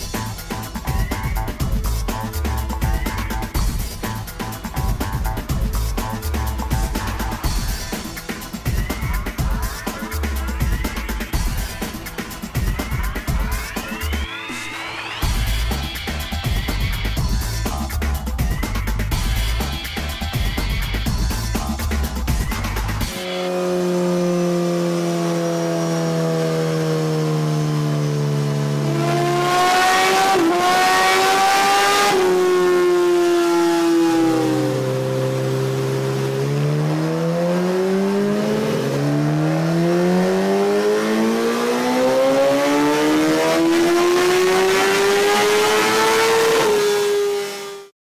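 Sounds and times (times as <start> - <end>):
music: 0.0 - 23.5, 29.0 - 34.4, 39.3 - 46.7
motorcycle engine revving: 19.1 - 47.9.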